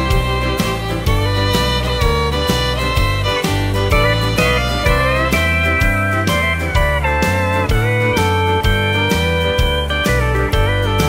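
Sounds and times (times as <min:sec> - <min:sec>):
country band playing: 0:00.0 - 0:11.0
steel guitar sliding notes: 0:00.0 - 0:11.0.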